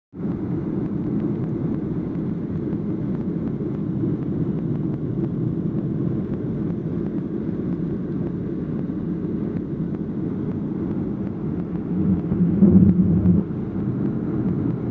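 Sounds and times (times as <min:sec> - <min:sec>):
jet engines rumbling: 0:00.2 - 0:14.9
rushing air: 0:11.3 - 0:14.3.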